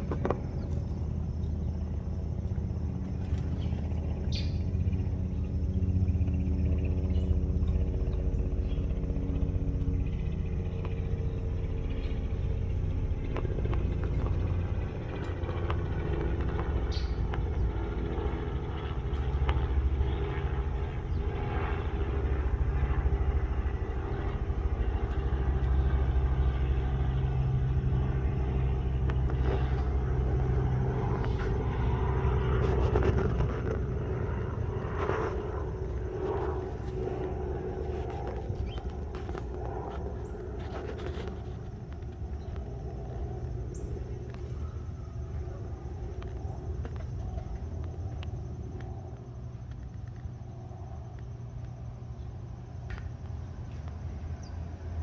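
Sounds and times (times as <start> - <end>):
low engine rumble: 0.0 - 55.0.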